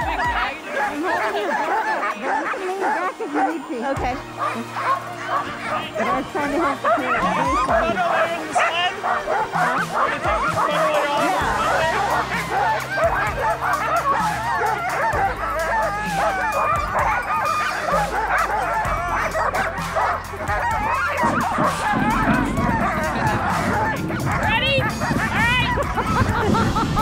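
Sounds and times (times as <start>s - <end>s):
background music low notes: 0.0s - 27.0s
sled dogs barking and yelping: 0.0s - 27.0s.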